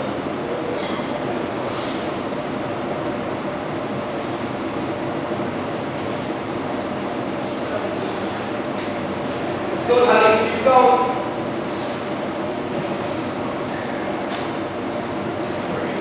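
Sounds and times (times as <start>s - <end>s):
steady hall hum: 0.0s - 16.0s.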